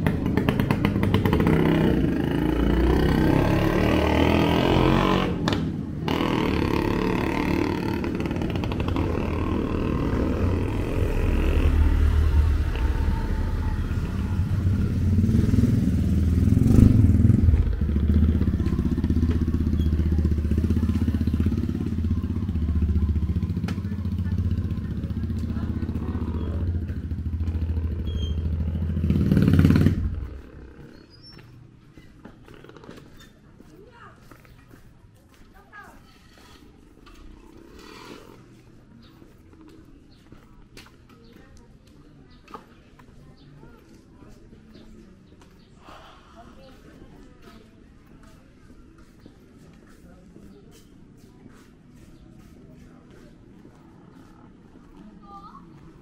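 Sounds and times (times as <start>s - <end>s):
motorcycle engine droning: 0.0s - 31.4s.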